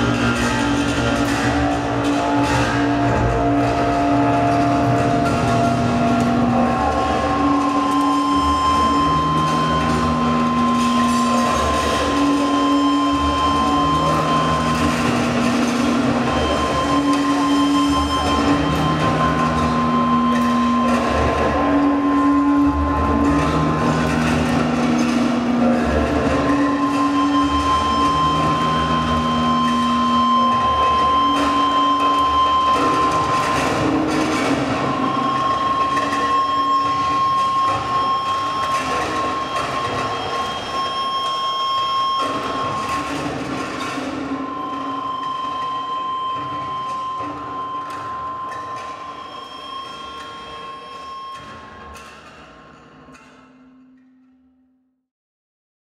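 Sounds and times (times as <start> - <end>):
dense clattering noise: 0.0 - 40.6
steady high tone: 0.0 - 51.8
low electronic drones: 0.0 - 53.2.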